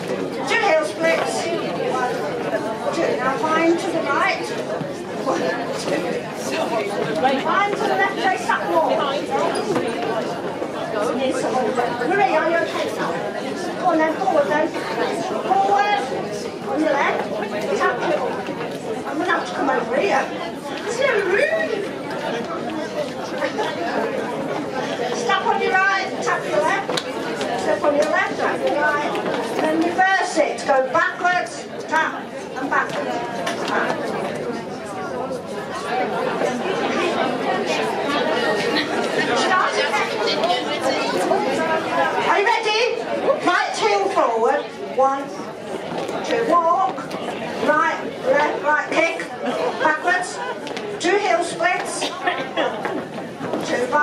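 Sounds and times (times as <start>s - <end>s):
many people chatting: 0.0s - 54.0s.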